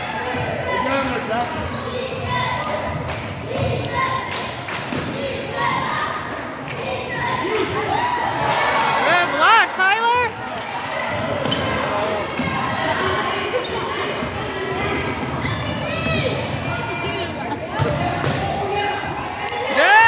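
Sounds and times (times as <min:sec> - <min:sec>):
sneakers squeaking: 0:00.0 - 0:09.0, 0:10.5 - 0:20.0.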